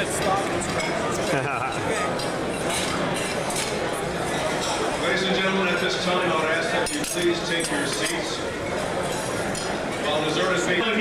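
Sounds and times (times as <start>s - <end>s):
plates and silverware clinking: 0.0s - 5.2s, 6.5s - 10.8s
crowd chatter: 0.0s - 11.0s.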